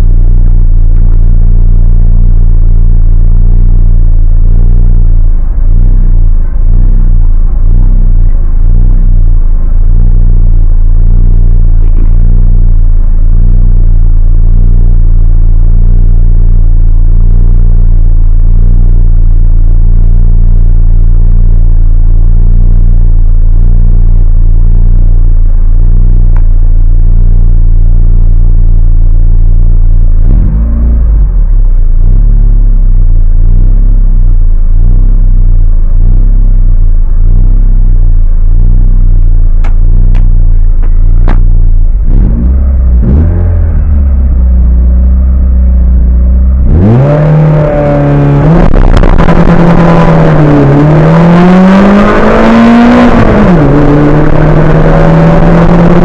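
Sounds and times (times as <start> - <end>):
race car engine idling: 0.0 - 50.8.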